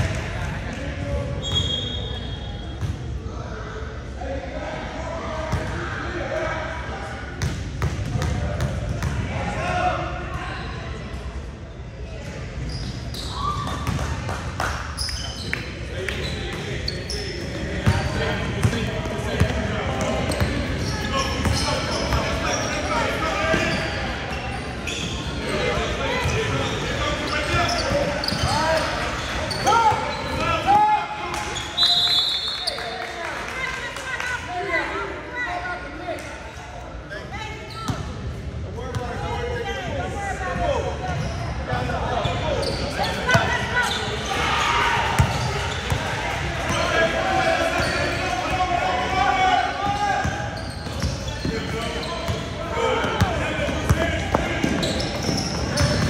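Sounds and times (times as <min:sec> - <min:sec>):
sneaker squeaks: 0:01.4 - 0:03.0, 0:12.3 - 0:14.1, 0:14.9 - 0:18.8, 0:20.2 - 0:30.6, 0:37.4 - 0:38.3, 0:41.0 - 0:47.0, 0:47.6 - 0:48.6, 0:49.8 - 0:56.0.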